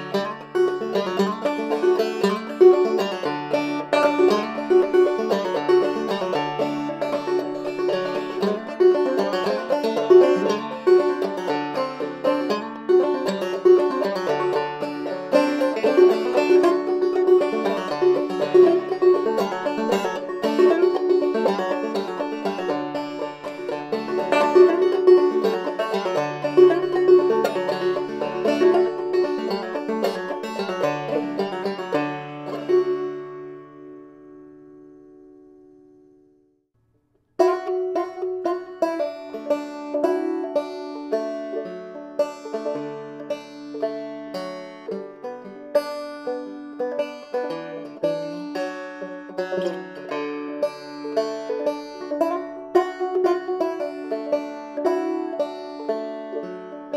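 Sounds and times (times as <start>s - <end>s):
banjo plucked tune: 0.0s - 36.4s, 37.4s - 56.9s.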